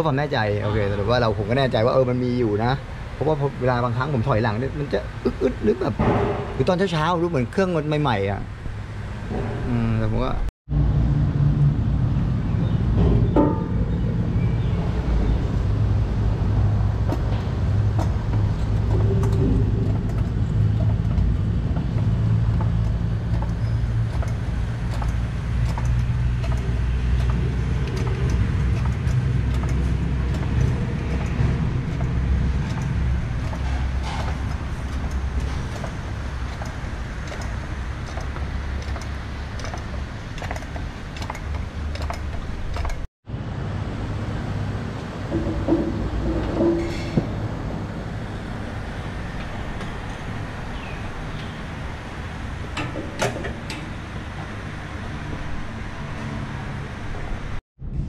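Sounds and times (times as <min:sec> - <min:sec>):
low mechanical hum: 0:00.0 - 0:58.0.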